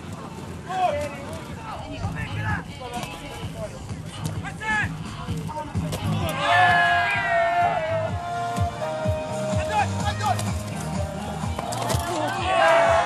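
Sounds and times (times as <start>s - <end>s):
people shouting: 6.0s - 13.0s.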